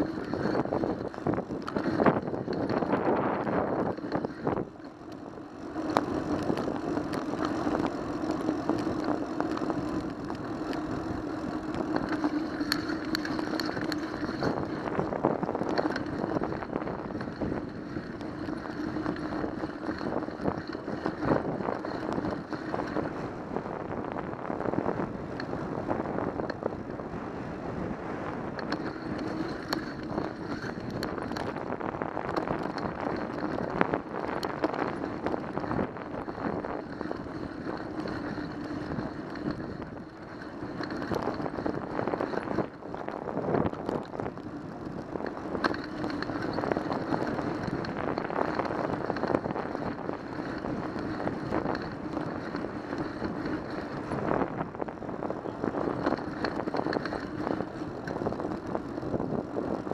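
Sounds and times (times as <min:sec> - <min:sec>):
small rattling clicks: 0:00.0 - 0:23.2, 0:28.5 - 0:54.9, 0:55.5 - 0:59.9
bicycle tyre noise: 0:00.0 - 0:59.9
wind on microphone: 0:00.0 - 0:59.9.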